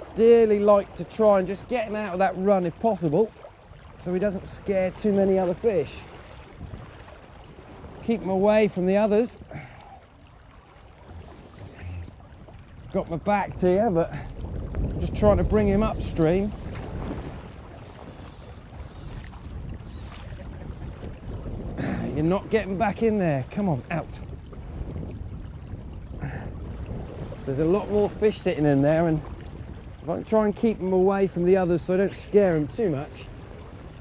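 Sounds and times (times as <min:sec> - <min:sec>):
shallow river current: 0:00.0 - 0:34.0
wind rumbling on microphone: 0:00.0 - 0:34.0.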